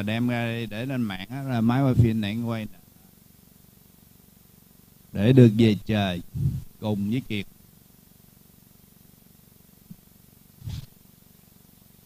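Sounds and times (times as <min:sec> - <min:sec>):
low pulsing hum: 0:06.2 - 0:07.1
short muffled burst: 0:06.3 - 0:06.8, 0:10.6 - 0:10.9.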